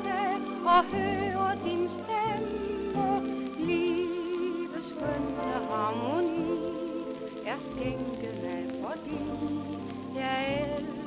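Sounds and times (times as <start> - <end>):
record surface crackle: 0.0 - 11.0.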